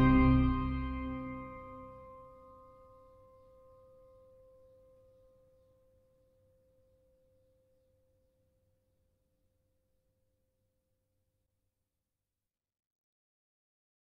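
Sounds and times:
organ chord: 0:00.0 - 0:02.1.

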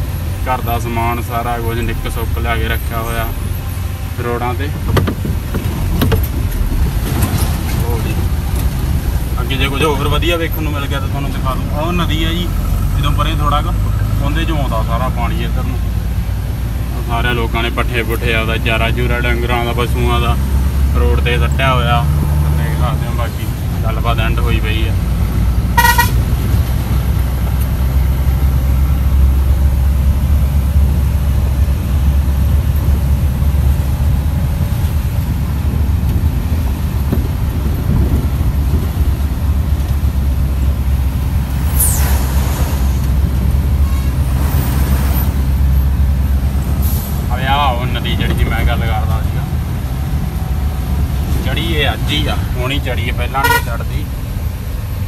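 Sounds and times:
truck engine and road rumble: 0:00.0 - 0:55.0
truck horn toot: 0:25.7 - 0:26.4, 0:53.3 - 0:53.9.

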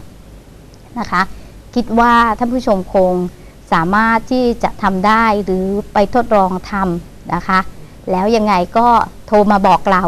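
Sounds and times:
woman speaking: 0:00.9 - 0:10.0.

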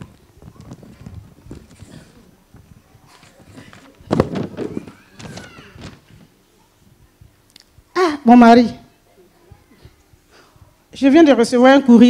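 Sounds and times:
paper rustling: 0:00.0 - 0:06.3
microphone handling knocks: 0:03.4 - 0:06.3.

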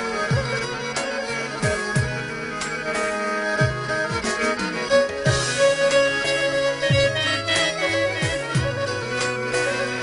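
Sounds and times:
backing track: 0:00.0 - 0:10.0
bowed fiddle folk melody: 0:00.0 - 0:10.0
deep beats dropping in pitch: 0:06.9 - 0:09.1.

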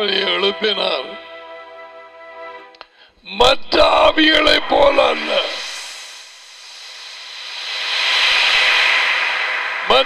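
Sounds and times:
hissing noise: 0:03.9 - 0:10.0.

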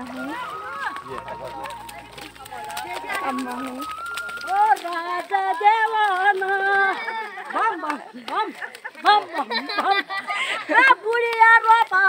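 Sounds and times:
people calling out: 0:00.0 - 0:09.5.

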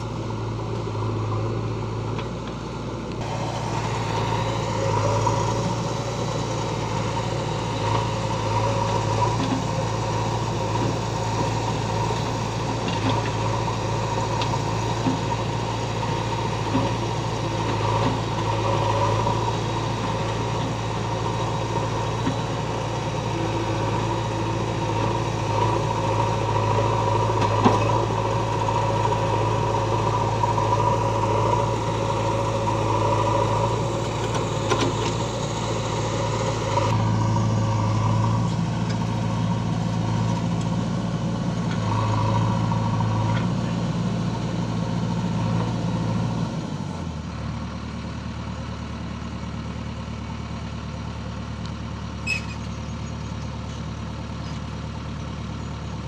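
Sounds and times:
diesel engines running: 0:00.0 - 0:56.0
low hum: 0:02.9 - 0:43.8.

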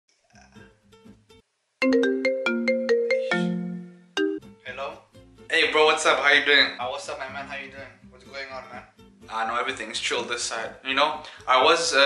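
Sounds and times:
marimba-like phone ringtone: 0:01.8 - 0:04.4.

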